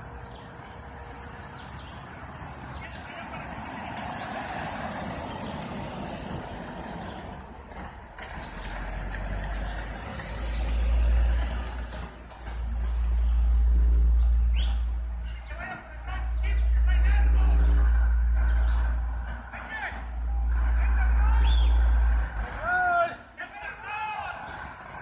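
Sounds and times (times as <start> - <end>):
minivan driving past: 0.0 - 25.0
deep low rumble: 8.8 - 22.7.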